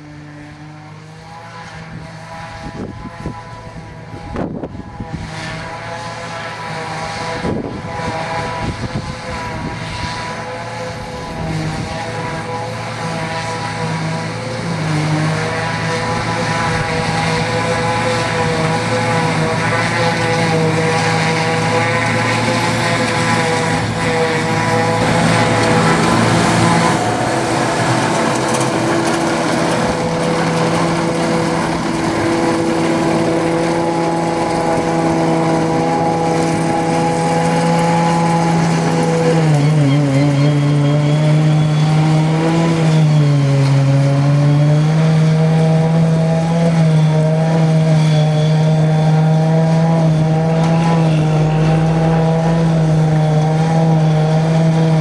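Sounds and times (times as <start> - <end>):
forage harvester chopping grass: 0.0 - 55.0
machine whine: 1.2 - 55.0
tractor engine under load: 8.0 - 55.0.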